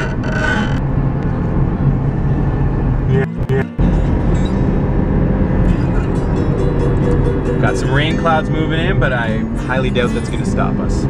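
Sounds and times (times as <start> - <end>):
car road and engine noise: 0.0 - 11.0.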